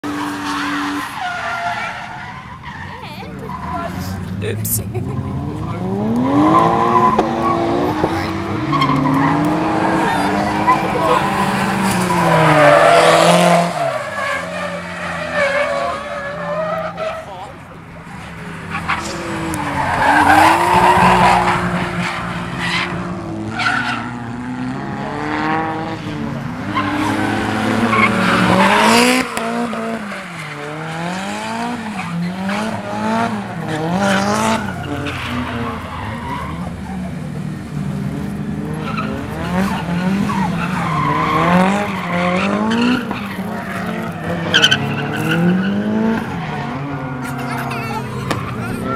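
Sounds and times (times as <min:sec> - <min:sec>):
car engines revving: 0:00.0 - 0:48.9.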